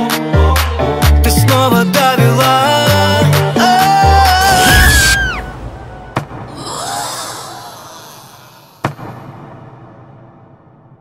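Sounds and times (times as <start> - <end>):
pop song slowing down: 0.0 - 5.8
hissing swell: 6.5 - 8.9.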